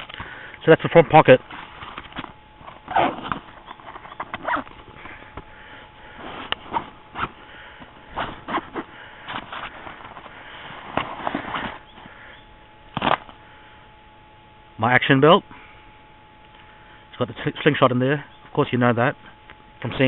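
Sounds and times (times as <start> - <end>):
backpack fabric rustling: 1.4 - 12.2.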